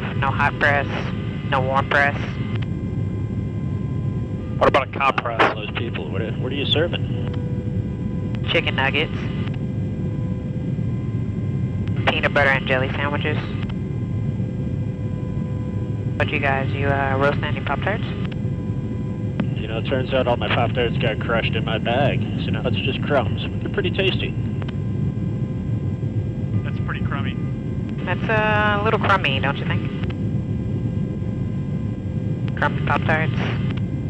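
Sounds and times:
aircraft engine low rumble: 0.0 - 34.0
faint electronic hum: 0.0 - 34.0
person speaking: 4.6 - 7.2, 19.5 - 24.3.

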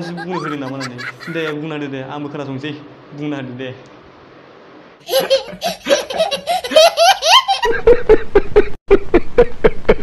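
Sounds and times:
high-pitched laughter: 0.0 - 1.6, 5.1 - 8.1
man laughing heartily: 0.0 - 1.6, 5.1 - 10.0.

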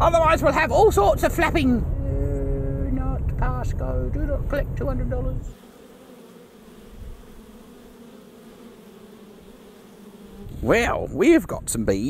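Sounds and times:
honey bees buzzing: 5.1 - 11.2.

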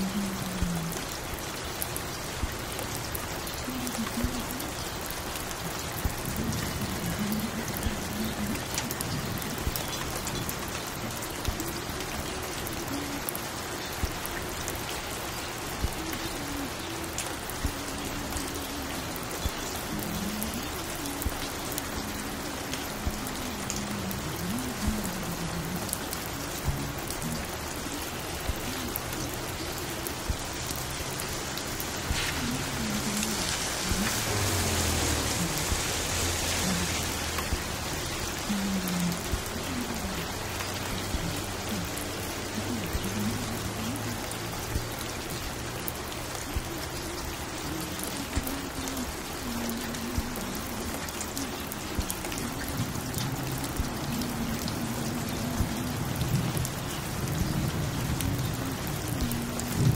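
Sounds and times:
steady rain: 0.0 - 59.9.

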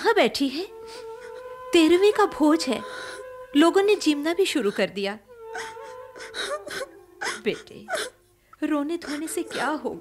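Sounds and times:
young woman crying and sobbing: 0.6 - 10.0.

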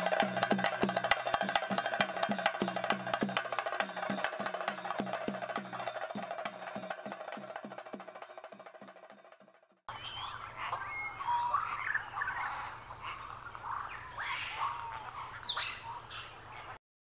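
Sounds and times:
music: 0.0 - 9.8
birds chirping and calling: 9.9 - 16.8.

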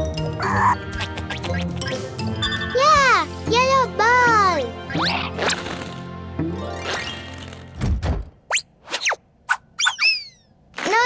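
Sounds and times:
light cartoon music: 0.0 - 9.1.

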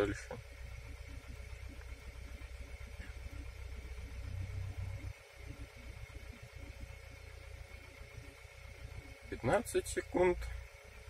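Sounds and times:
car engine idling: 0.0 - 11.0
faint steady whine: 0.0 - 11.0.

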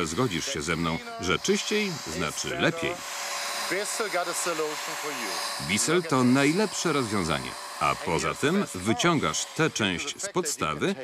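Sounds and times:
carpet washer motor whine: 0.0 - 10.1
suction hiss: 0.0 - 11.0.

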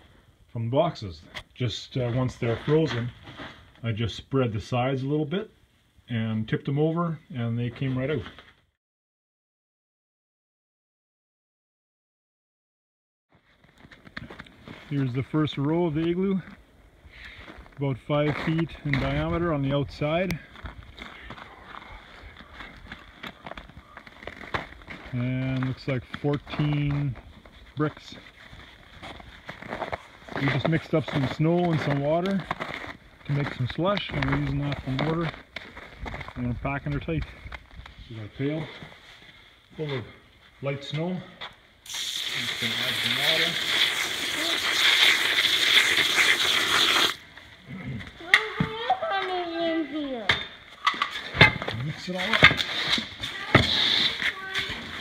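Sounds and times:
footsteps crunching on snow: 20.0 - 39.5.

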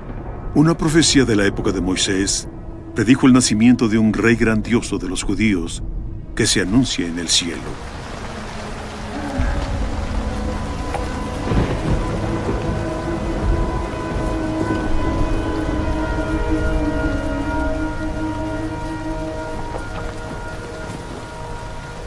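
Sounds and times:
long held notes: 7.5 - 22.0
deep low rumble: 7.8 - 22.0.

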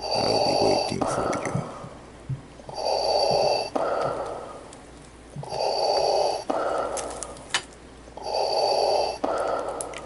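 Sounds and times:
man breathing heavily in mask: 2.7 - 4.7, 5.4 - 7.5, 8.2 - 10.0.

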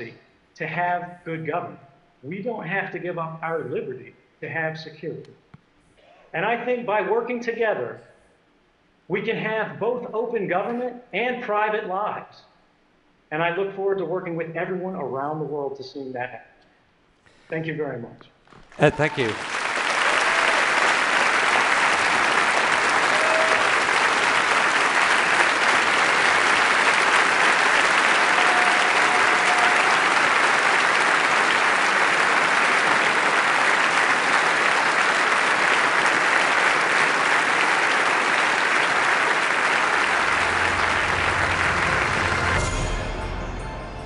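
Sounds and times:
large audience clapping: 18.6 - 43.2
music: 40.0 - 44.0.

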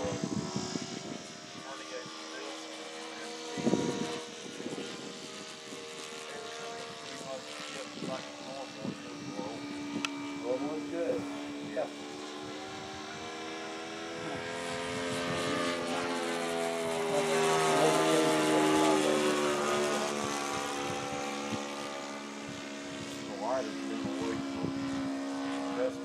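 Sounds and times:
model plane engine droning: 0.0 - 26.0.

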